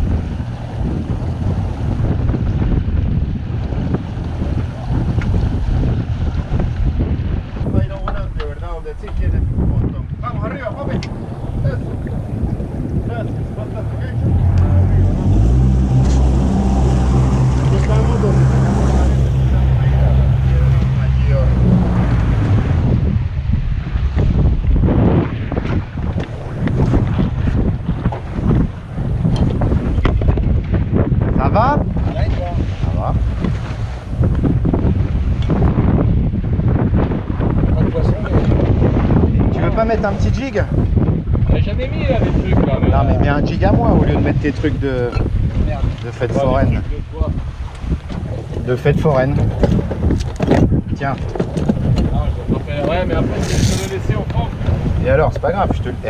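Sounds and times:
boat engine droning: 0:00.0 - 0:41.3, 0:43.4 - 0:56.0
wind buffeting microphone: 0:00.0 - 0:56.0.

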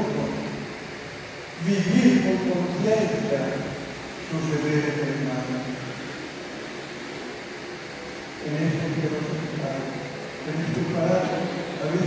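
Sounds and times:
man speaking into a microphone: 0:00.0 - 0:00.7, 0:01.6 - 0:06.0, 0:08.4 - 0:12.0
steady hiss: 0:00.0 - 0:12.0.

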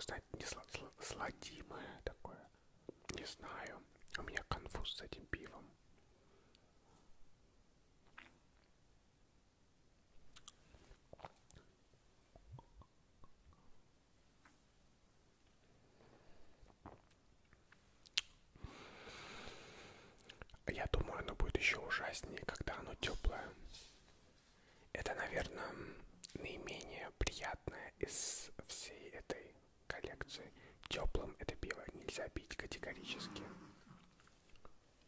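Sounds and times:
close-miked whispering: 0:00.0 - 0:05.8, 0:20.2 - 0:24.0, 0:24.9 - 0:34.1.

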